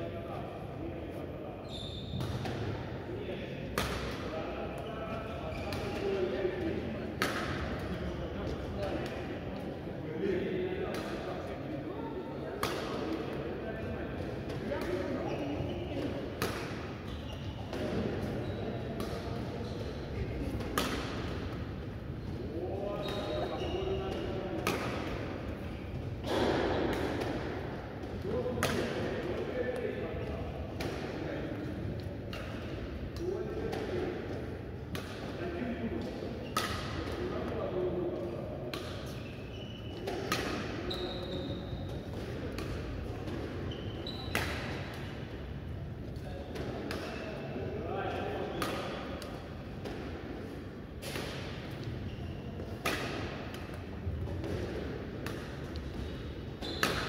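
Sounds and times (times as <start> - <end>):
badminton rackets hitting shuttlecocks: 3.7 - 4.2, 7.2 - 7.9, 12.6 - 13.3, 16.0 - 17.0, 20.5 - 21.7, 24.0 - 29.4, 32.2 - 34.0, 36.0 - 37.4, 40.0 - 40.8, 41.9 - 43.6, 44.2 - 45.2, 48.5 - 50.3, 51.0 - 52.0, 52.6 - 57.0.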